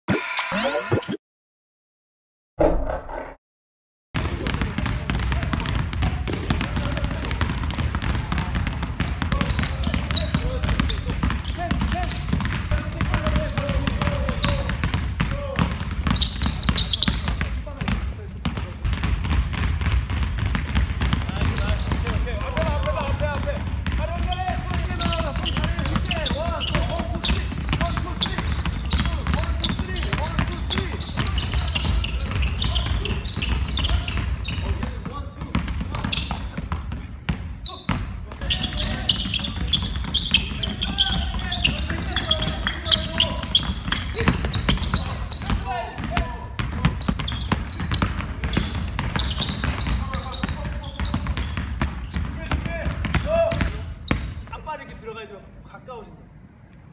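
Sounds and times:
basketballs bouncing on wooden floor: 0:04.2 - 0:54.6.

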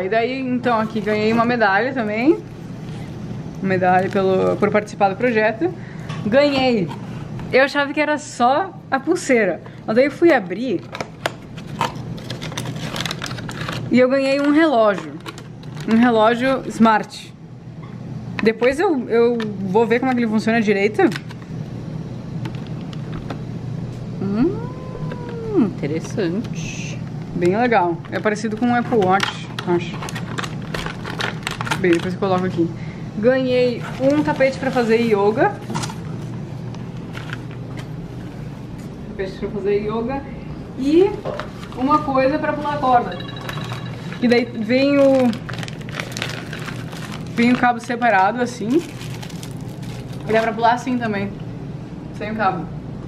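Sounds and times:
plastic pack clicking and crackling: 0:10.8 - 0:16.0, 0:29.2 - 0:32.5, 0:44.8 - 0:50.5.

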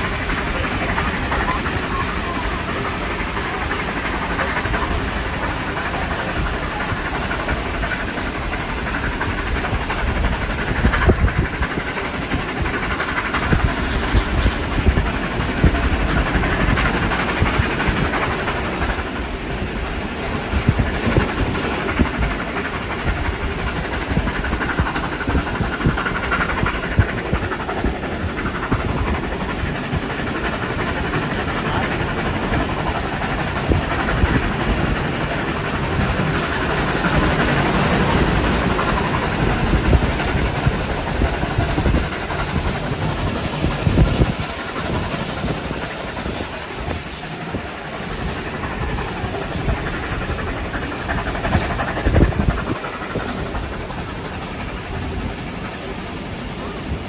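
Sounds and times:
train wheels rumbling on rails: 0:00.0 - 0:57.0.

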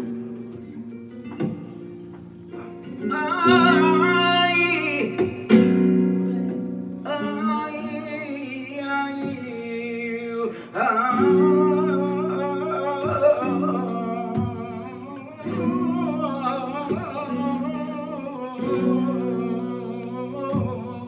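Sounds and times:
flamenco guitar chords: 0:00.0 - 0:21.0
man singing flamenco: 0:02.4 - 0:21.0.

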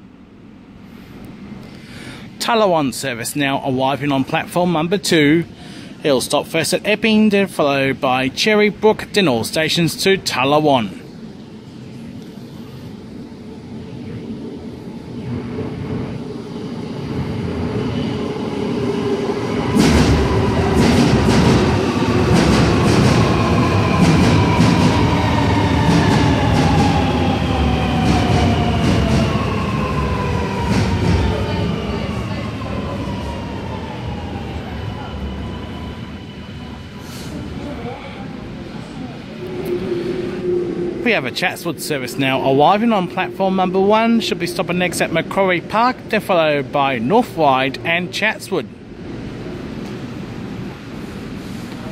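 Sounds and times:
metro train rumble: 0:00.0 - 0:51.9.

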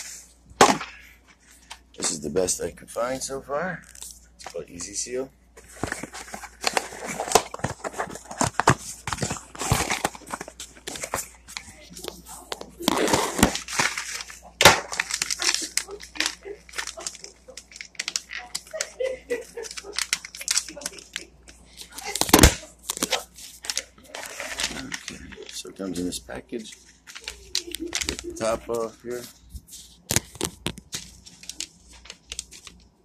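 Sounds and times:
packaging crinkling and rustling: 0:00.0 - 0:33.0.

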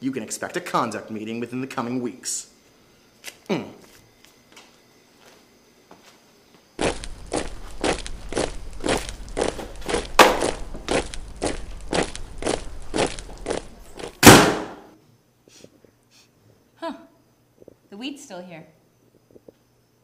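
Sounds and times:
door slamming shut: 0:14.2 - 0:14.9.

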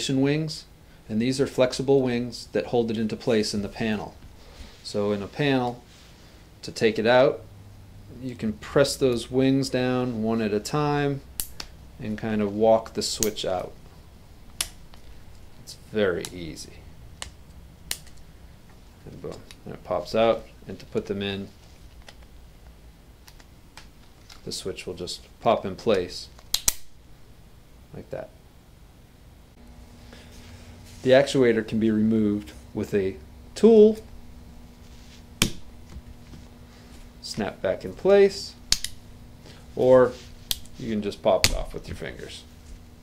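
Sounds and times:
sharp plastic clicks: 0:25.9 - 0:26.9, 0:38.7 - 0:39.0
plastic switch snapping click: 0:38.7 - 0:39.0.

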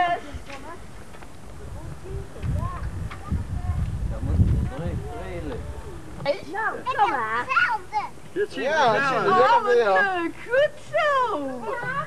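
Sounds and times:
children talking and calling: 0:00.0 - 0:12.0.

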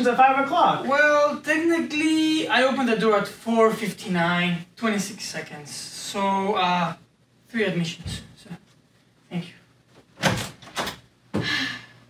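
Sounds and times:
door handle and latch: 0:10.2 - 0:11.0
door clunks: 0:10.2 - 0:11.1.

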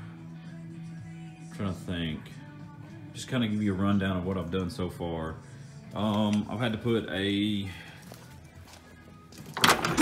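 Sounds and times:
faint music: 0:00.0 - 0:10.0
truck door latch clunk and rattle: 0:09.5 - 0:10.0.

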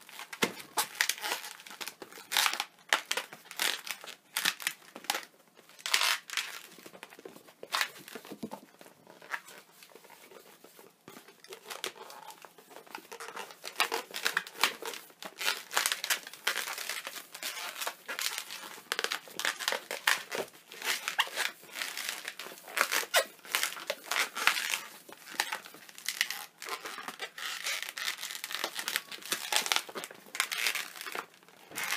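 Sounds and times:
balloon rubbing and squeaking: 0:13.1 - 0:31.9.

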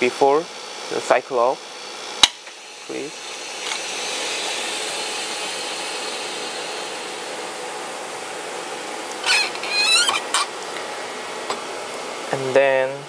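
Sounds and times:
air hissing into vacuum chamber: 0:02.6 - 0:10.5
chamber door squeaking: 0:09.2 - 0:10.5.

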